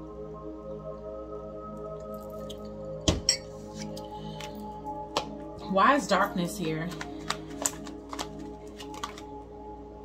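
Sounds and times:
soft background music: 0.0s - 10.0s
cards clicking on a table: 6.9s - 9.2s.

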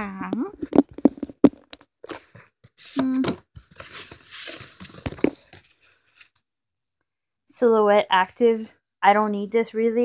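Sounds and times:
rustling: 0.6s - 6.4s.

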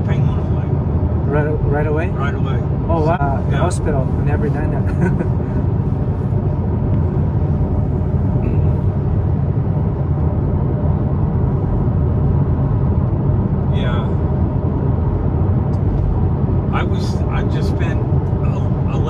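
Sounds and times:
car road and engine rumble: 0.0s - 19.0s.

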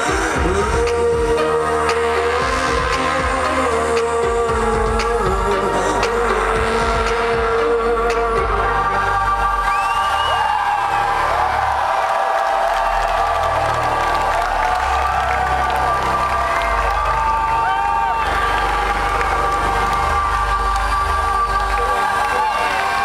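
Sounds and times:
crowd cheering and whooping: 6.2s - 23.0s.

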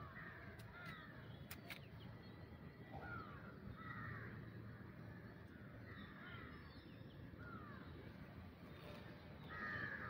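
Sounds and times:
faint bird calls: 0.0s - 10.0s.

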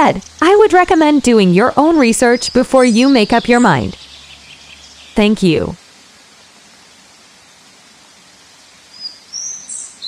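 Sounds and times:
birds chirping: 0.0s - 5.8s, 8.1s - 10.0s
waterfall hiss: 5.8s - 10.0s.

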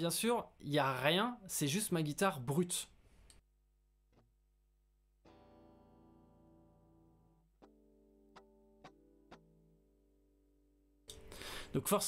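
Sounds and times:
faint guitar chords strummed: 5.3s - 10.7s.

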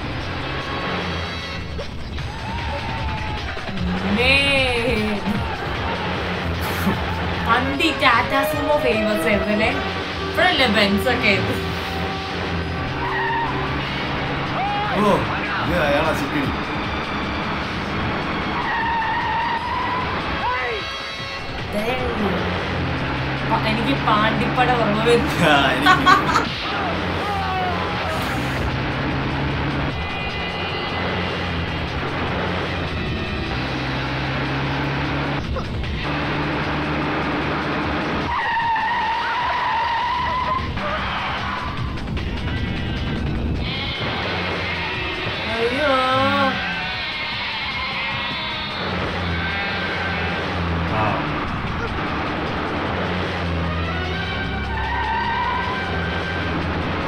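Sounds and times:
background music: 0.0s - 57.0s
vehicle engines running hard: 0.0s - 57.0s
tyres skidding on dirt: 11.0s - 21.7s, 27.9s - 45.4s, 46.3s - 57.0s.

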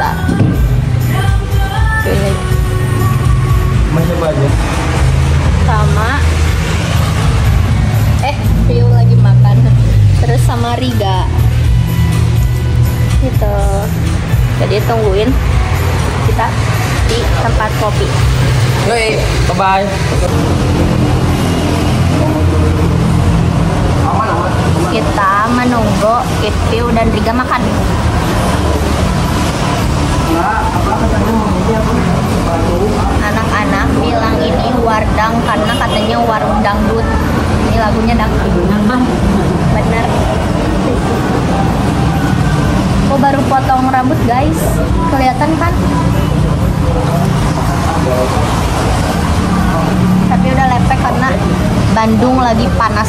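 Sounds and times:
street traffic: 0.0s - 53.0s
vehicle engine running: 0.0s - 53.0s
faint voices chattering: 14.6s - 53.0s.

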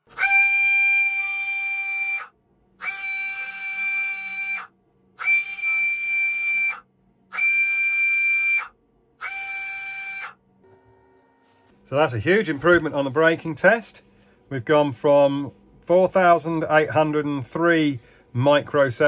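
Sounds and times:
small motor whining: 0.0s - 11.6s.

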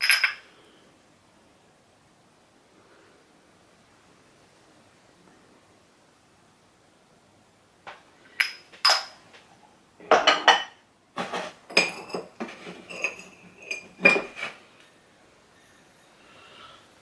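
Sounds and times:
glass items clinking: 0.0s - 0.4s, 8.4s - 9.2s, 10.0s - 10.8s, 11.4s - 14.5s.

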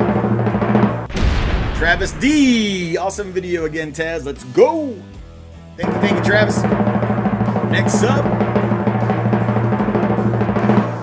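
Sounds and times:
drum roll: 0.0s - 4.0s, 5.8s - 11.0s.

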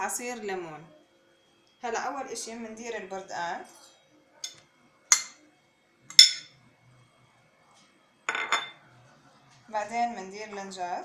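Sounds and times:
bowl clinking against glass: 3.8s - 5.4s, 6.1s - 6.6s, 8.3s - 8.8s.

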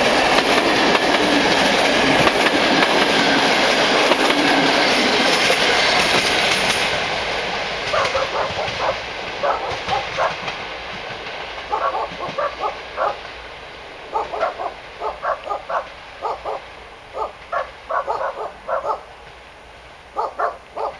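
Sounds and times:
train rumbling: 0.0s - 20.9s
dog barking: 7.9s - 10.5s, 11.7s - 13.3s, 14.1s - 19.1s, 20.1s - 20.9s.

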